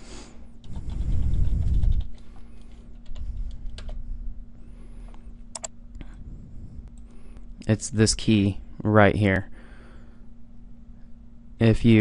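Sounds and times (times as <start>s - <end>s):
steady low hum: 0.0s - 12.0s
computer keyboard keys pressed: 0.6s - 4.0s, 5.5s - 5.7s.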